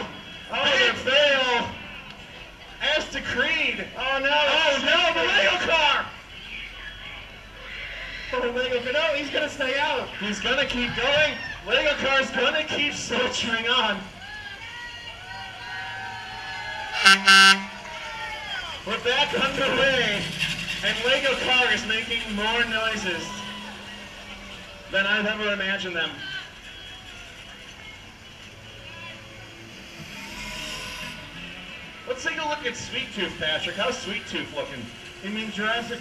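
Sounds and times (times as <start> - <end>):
faint voices: 0.0 - 36.0
horn blasts: 16.8 - 18.1.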